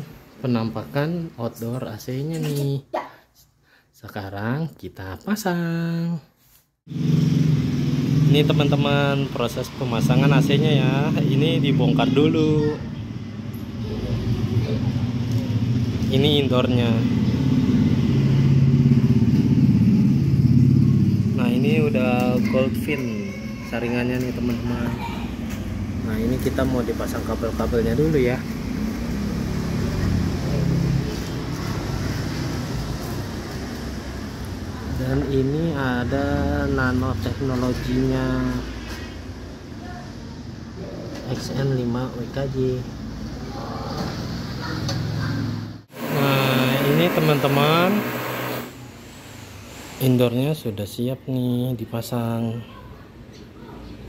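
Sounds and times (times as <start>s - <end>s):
motor humming: 46.0s - 48.8s.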